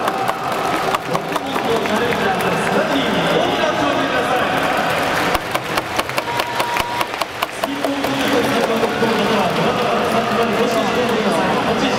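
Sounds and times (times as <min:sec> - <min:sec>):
crowd murmur: 0:00.0 - 0:11.9
spectators clapping: 0:00.0 - 0:11.9.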